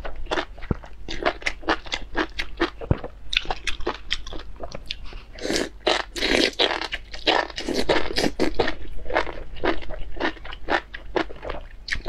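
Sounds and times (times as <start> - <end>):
person chewing: 0.2 - 12.0
person slurping noodles: 5.4 - 6.6.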